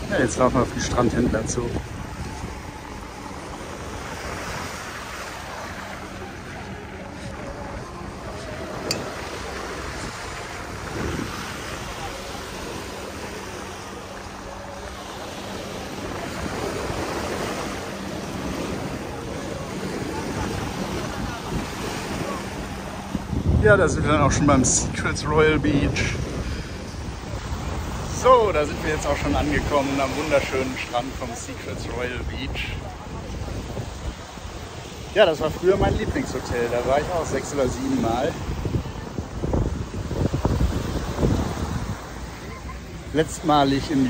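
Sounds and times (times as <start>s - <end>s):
sea surf washing onto beach: 0.0s - 44.0s
wind buffeting microphone: 0.0s - 44.0s.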